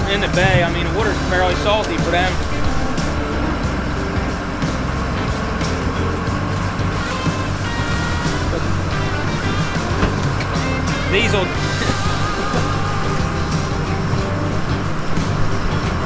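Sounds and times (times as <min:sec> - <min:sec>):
background music with held tones: 0:00.0 - 0:16.0
boat engine droning: 0:00.0 - 0:16.0.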